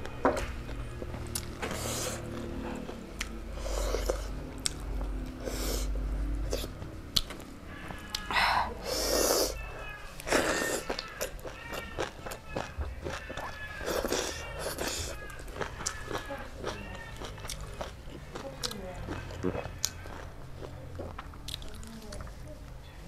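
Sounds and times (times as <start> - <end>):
wet chewing and lip-smacking: 0.6 - 8.3, 10.2 - 22.3.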